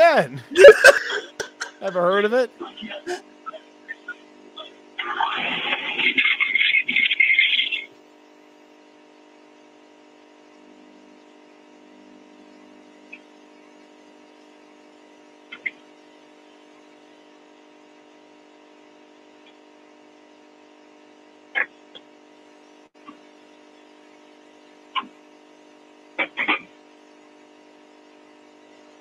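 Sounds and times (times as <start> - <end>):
steady machine hum: 0.0 - 29.0
burst of laughter: 0.5 - 1.8.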